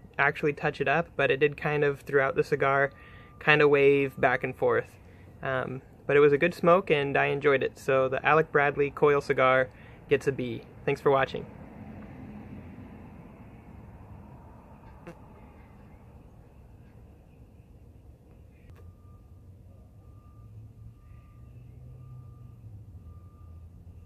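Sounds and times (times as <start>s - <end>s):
low engine-like rumble: 0.0s - 24.0s
thin electronic beep: 18.7s - 24.0s.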